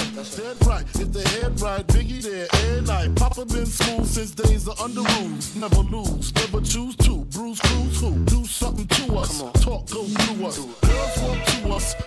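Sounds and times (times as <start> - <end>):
rapping over a drum beat: 0.0 - 12.0.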